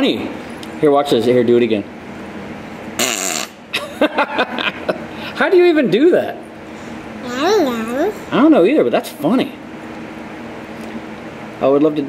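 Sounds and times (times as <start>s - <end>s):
girl making falling-pitch noise: 7.2s - 8.2s.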